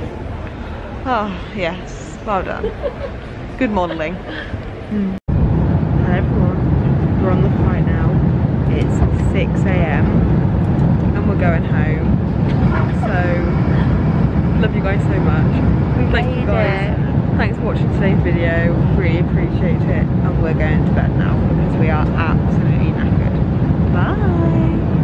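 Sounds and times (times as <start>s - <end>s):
loud low rumble: 0.0s - 25.0s
women giggling and murmuring: 2.3s - 5.2s.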